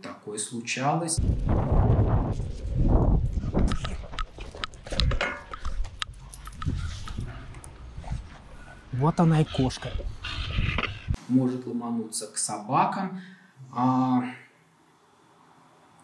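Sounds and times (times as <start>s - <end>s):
uneven low rumble: 1.2s - 4.2s.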